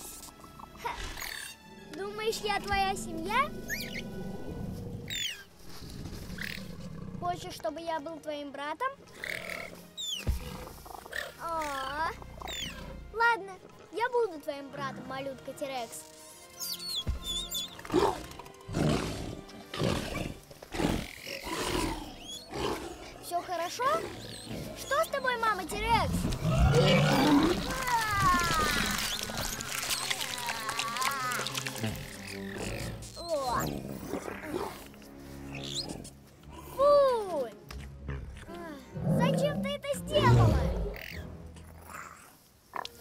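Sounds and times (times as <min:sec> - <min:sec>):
background music: 0:00.0 - 0:43.0
creature roars and squealing calls: 0:26.2 - 0:34.9.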